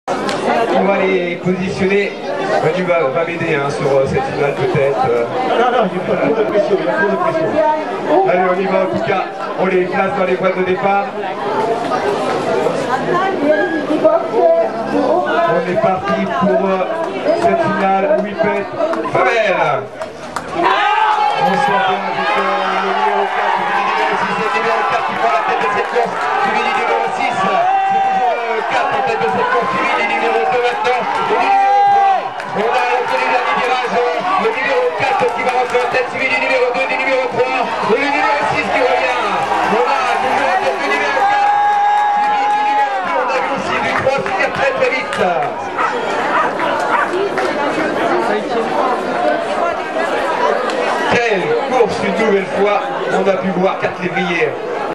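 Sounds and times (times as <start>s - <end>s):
crowd noise: 0.0s - 54.9s
overlapping voices: 11.4s - 54.0s
man commentating: 21.2s - 45.7s.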